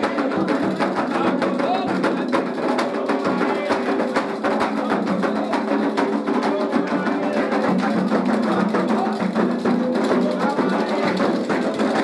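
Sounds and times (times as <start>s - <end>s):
hand drums playing driving rhythm: 0.0s - 12.0s.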